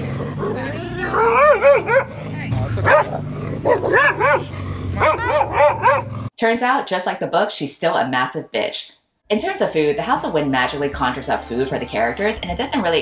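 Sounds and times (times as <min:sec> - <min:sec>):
small dog yapping: 0:02.9 - 0:06.1.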